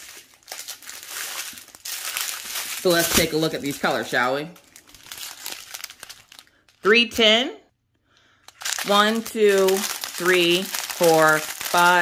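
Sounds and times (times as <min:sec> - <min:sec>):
plastic zip bags crinkling: 0:00.0 - 0:06.8, 0:08.4 - 0:12.0.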